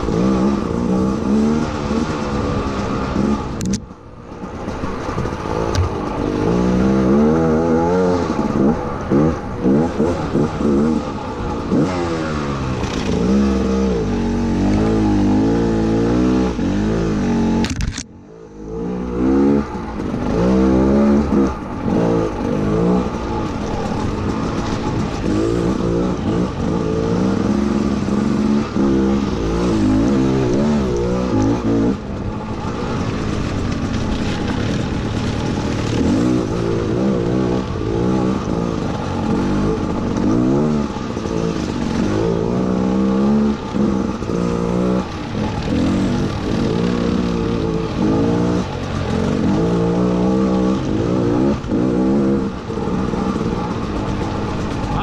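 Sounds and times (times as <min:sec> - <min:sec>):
dirt bike engine revving: 0:00.0 - 0:03.6, 0:05.0 - 0:17.6, 0:18.7 - 0:55.0.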